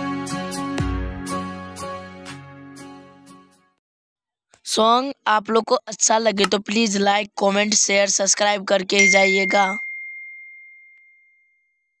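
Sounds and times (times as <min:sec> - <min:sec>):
high ringing ding: 0:09.0 - 0:11.8.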